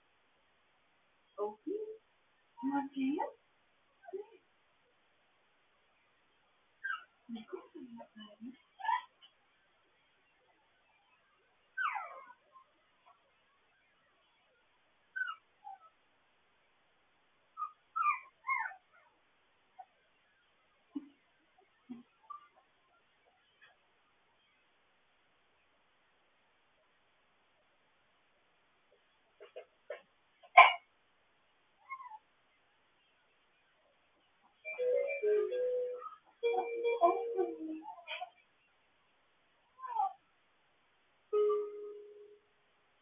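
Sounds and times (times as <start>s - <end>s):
puppy whimpering: 6.8s - 7.1s, 8.8s - 9.1s, 11.8s - 12.7s, 15.2s - 16.0s, 17.6s - 19.1s, 21.9s - 22.6s, 31.8s - 32.3s, 34.7s - 38.4s, 39.8s - 40.2s
puppy yip: 6.8s - 7.2s, 8.8s - 9.2s, 11.8s - 13.2s, 15.1s - 16.0s, 17.6s - 19.1s, 22.2s - 22.6s, 31.8s - 32.3s, 35.9s - 38.4s, 39.8s - 40.2s
puppies whimpering: 11.8s - 12.5s, 15.2s - 15.9s, 17.6s - 18.8s.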